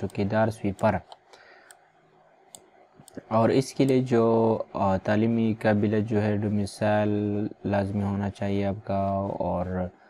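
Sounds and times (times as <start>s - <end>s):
computer mouse clicks: 0.0s - 4.1s.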